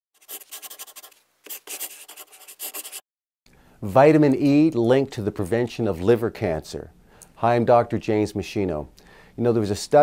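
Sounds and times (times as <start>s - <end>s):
quick scratchy strokes: 0.2s - 3.0s
man speaking: 3.8s - 10.0s.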